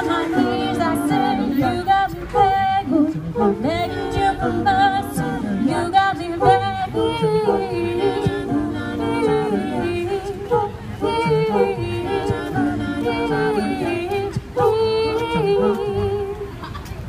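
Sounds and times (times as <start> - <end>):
a cappella group singing: 0.0 - 16.6.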